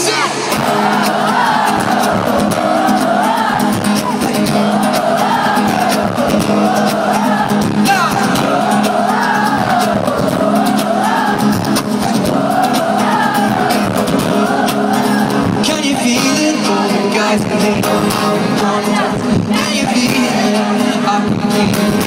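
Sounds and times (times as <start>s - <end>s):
live pop song over sound system: 0.0s - 22.0s.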